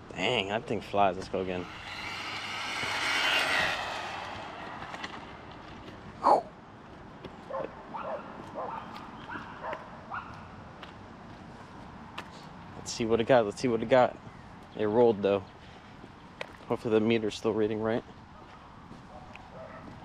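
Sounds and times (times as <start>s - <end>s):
electric motor whining: 1.2s - 5.9s.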